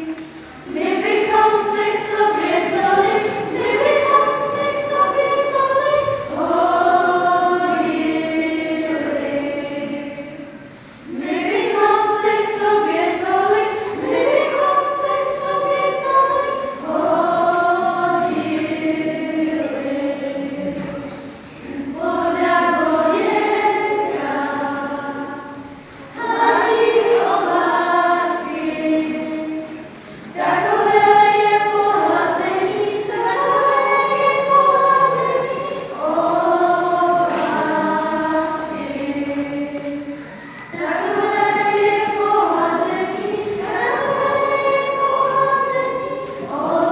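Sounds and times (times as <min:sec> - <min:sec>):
children's choir singing: 0:00.0 - 0:46.9.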